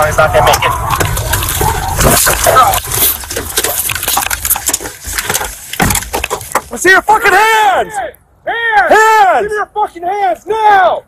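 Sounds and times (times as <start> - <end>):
gear knocking against camera: 1.0 - 6.8
loud thump: 5.8 - 6.7.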